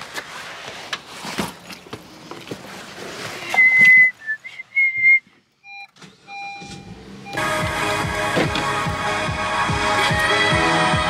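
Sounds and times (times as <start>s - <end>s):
electronic beeps: 5.6s - 7.4s.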